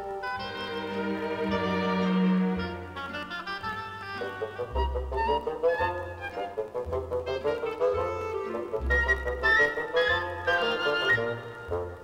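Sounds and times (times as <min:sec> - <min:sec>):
instrumental background music: 0:00.0 - 0:12.0.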